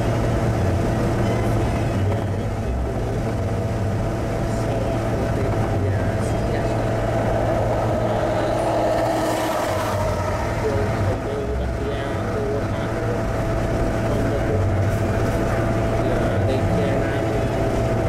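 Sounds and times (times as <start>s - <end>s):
car cabin road drone: 0.0s - 18.0s.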